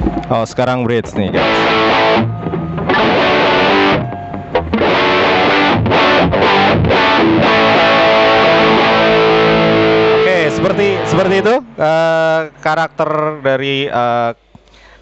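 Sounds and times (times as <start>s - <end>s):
distorted electric guitar chords: 0.0s - 12.7s.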